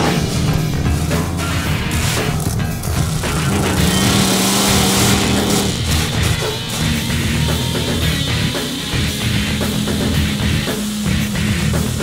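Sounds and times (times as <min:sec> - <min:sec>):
monster truck engine: 0:00.0 - 0:12.0
rock music: 0:00.0 - 0:12.0.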